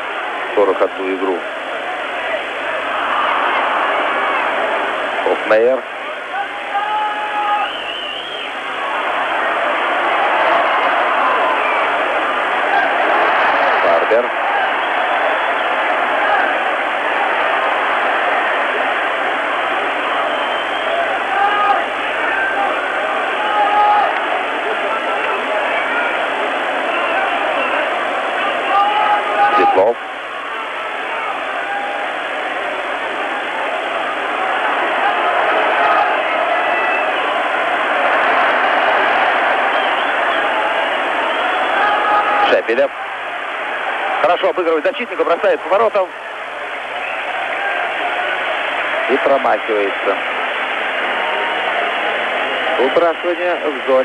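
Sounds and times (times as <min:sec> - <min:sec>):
arena crowd din: 0:00.0 - 0:54.0
crowd shouts: 0:00.0 - 0:54.0.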